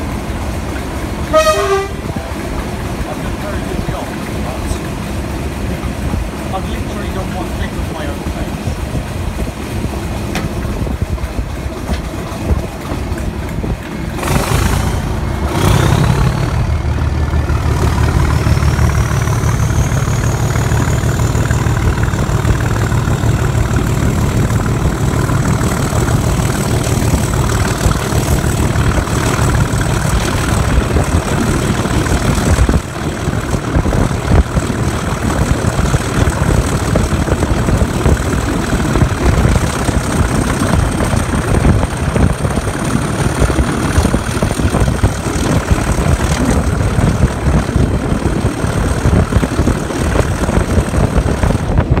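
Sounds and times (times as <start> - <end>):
diesel locomotive engine working hard: 0.0 - 52.0
high turbocharger whistle: 1.3 - 2.0.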